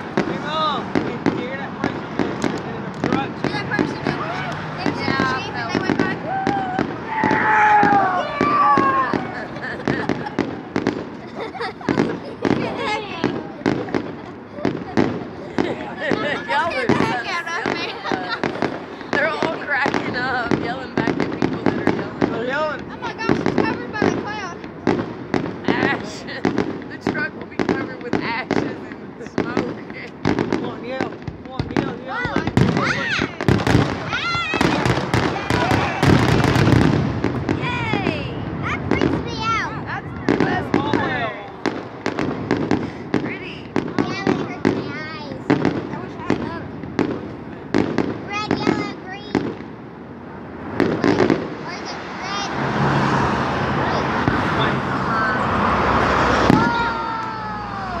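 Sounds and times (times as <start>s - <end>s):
fireworks bangs and crackling: 0.0s - 58.0s.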